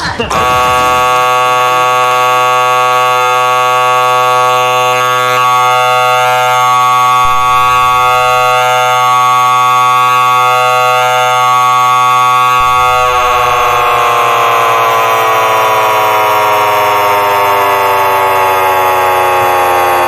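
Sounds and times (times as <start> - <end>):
game show buzzer: 0.0 - 20.0.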